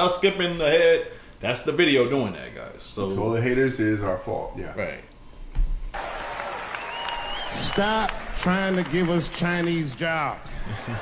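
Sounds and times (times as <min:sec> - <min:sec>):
audience applauding: 0:05.9 - 0:11.0.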